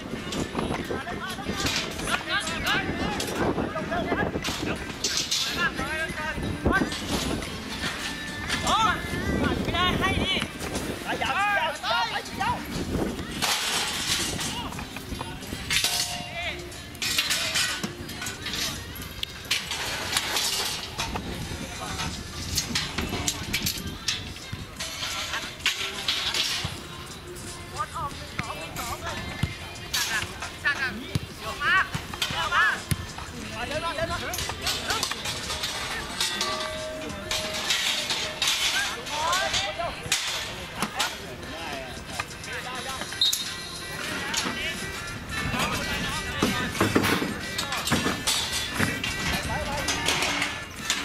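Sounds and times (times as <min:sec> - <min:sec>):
players calling and shouting: 0:00.3 - 0:19.0, 0:22.8 - 0:51.0.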